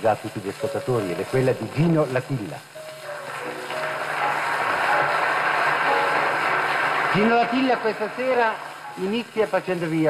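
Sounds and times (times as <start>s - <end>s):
radio recording crackle: 0.0s - 10.0s
audience applauding: 3.0s - 10.0s.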